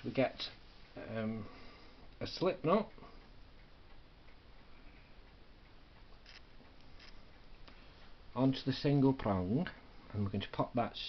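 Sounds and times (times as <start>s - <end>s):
faint ticking: 0.0s - 10.9s
soft rustle: 6.0s - 9.0s.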